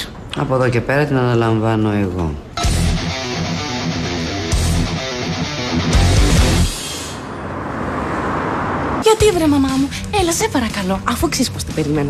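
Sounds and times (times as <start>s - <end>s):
passing cars rushing: 5.7s - 9.2s.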